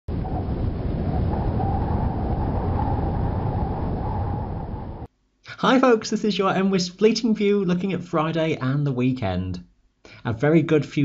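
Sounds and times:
deep rumbling wind: 0.0s - 5.1s
faint wavering whistle: 0.2s - 5.1s.

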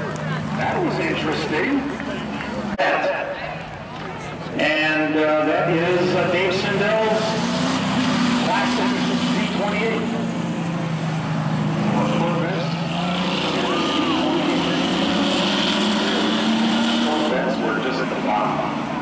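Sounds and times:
car engines accelerating: 0.0s - 19.0s.

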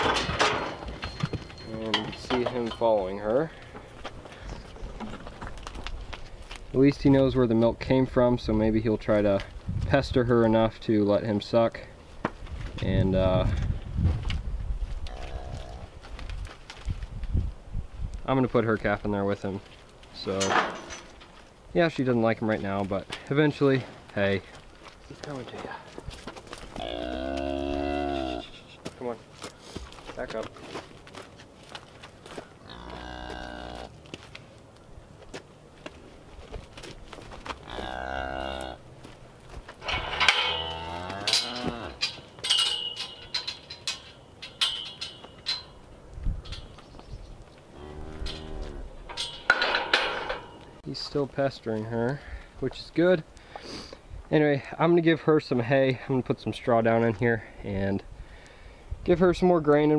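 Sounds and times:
metal gate and chain clanking: 0.0s - 3.6s, 20.2s - 21.4s, 39.8s - 47.0s, 47.8s - 50.8s
cow mooing: 26.8s - 28.5s, 32.6s - 33.9s, 37.7s - 38.8s, 40.0s - 42.0s, 47.8s - 48.9s.

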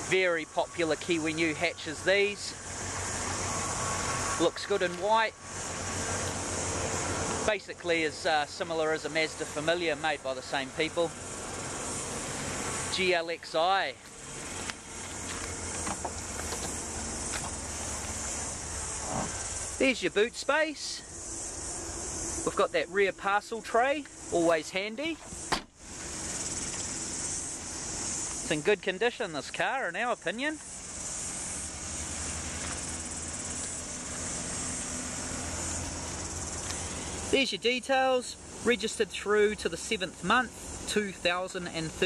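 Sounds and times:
insect chorus: 0.0s - 42.0s
car tailgate opening knock: 25.5s - 25.7s.

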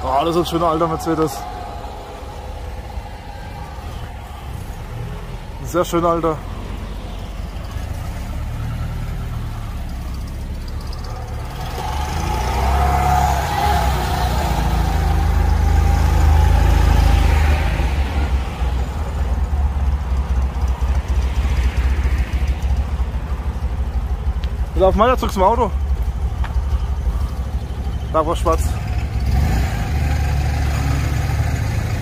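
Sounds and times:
car engine low rumble: 0.0s - 32.0s.

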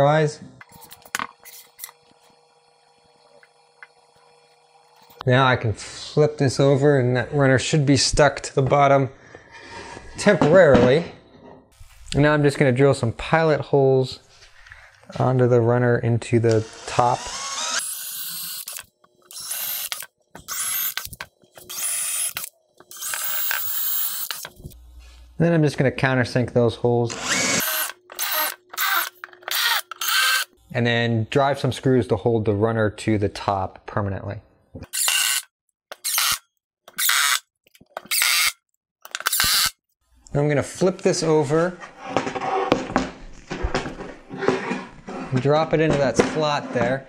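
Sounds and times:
cordless drill whining: 16.5s - 24.5s, 27.1s - 30.6s, 36.0s - 36.4s, 37.0s - 37.4s, 38.1s - 38.6s, 39.2s - 39.8s.

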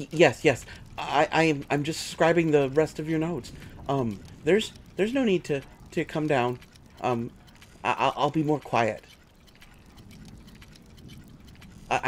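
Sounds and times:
person speaking: 0.0s - 9.2s
light ticking: 0.0s - 12.0s
low steady hum: 0.0s - 12.0s.

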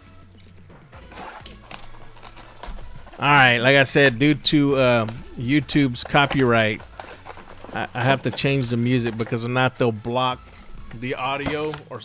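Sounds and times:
quiet background music: 0.0s - 12.0s
plastic wrap being opened: 1.0s - 9.9s.

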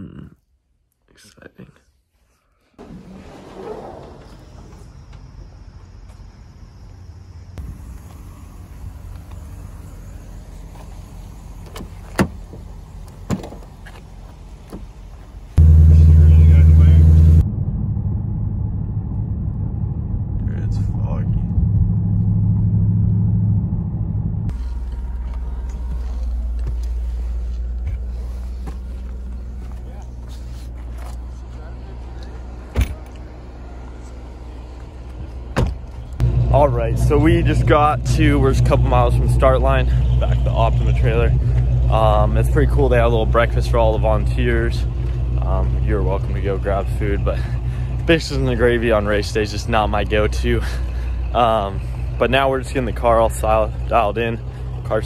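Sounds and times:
engine low rumble while driving: 3.2s - 55.0s
car engine heard from cabin: 7.5s - 55.0s.

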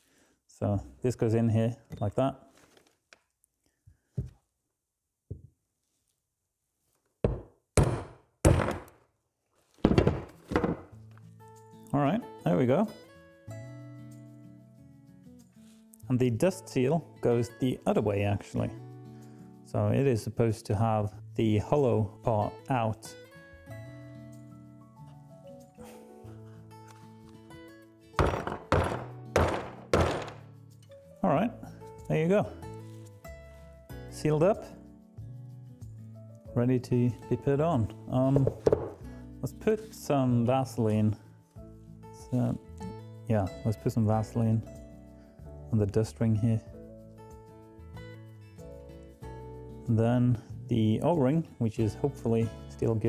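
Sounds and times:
hammer knocking on metal: 7.3s - 8.9s, 28.2s - 30.4s
background music: 10.0s - 53.0s.

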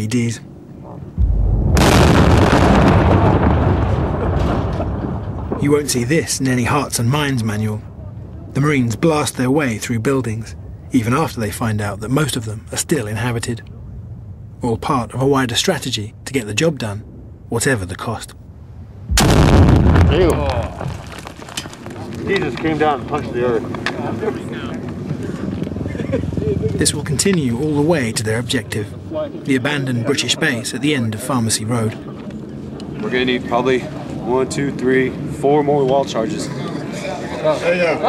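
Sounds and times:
harsh wide blast: 1.2s - 4.8s, 19.1s - 20.3s
deep explosion boom: 1.2s - 5.6s, 19.1s - 21.2s
long rumble: 1.2s - 5.6s, 19.1s - 20.1s.

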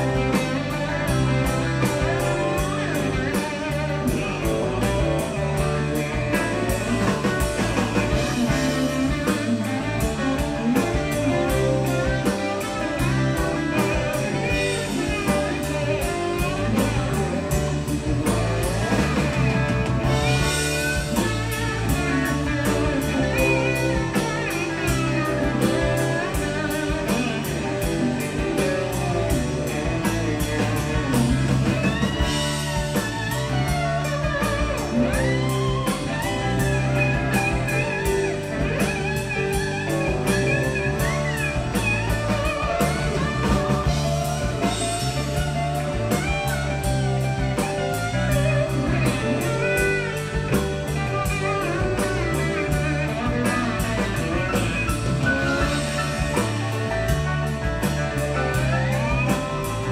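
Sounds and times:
lead guitar bending notes: 0.0s - 59.9s
live rock band playing: 0.0s - 59.9s.

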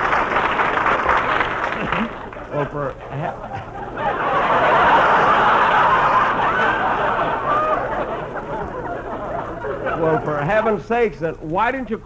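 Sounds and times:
audience laughing: 1.6s - 11.0s.

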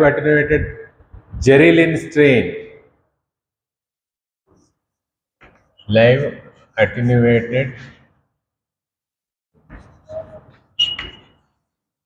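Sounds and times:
high chalk squeak: 9.7s - 11.6s.

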